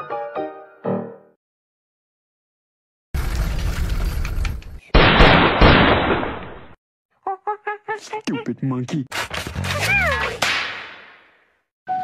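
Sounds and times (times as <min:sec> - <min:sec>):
sharp crack: 0:05.0 - 0:06.8, 0:10.2 - 0:11.5.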